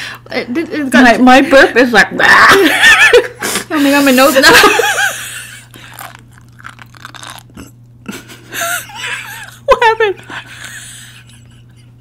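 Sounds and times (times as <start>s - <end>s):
close chewing with wet pops: 5.7s - 7.7s.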